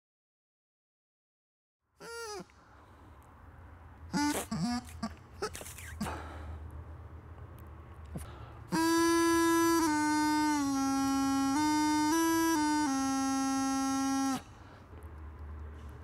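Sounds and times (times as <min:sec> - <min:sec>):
bagpipe practice chanter tune: 0:02.0 - 0:02.6, 0:04.1 - 0:05.8, 0:08.7 - 0:14.8.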